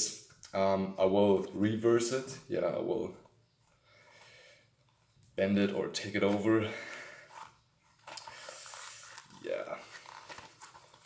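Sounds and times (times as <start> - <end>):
fabric and rubber rustling: 6.0 - 11.0.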